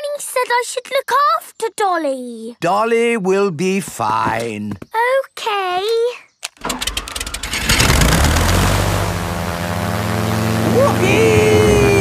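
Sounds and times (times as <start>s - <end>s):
toy engine sputtering and droning: 6.7s - 12.0s.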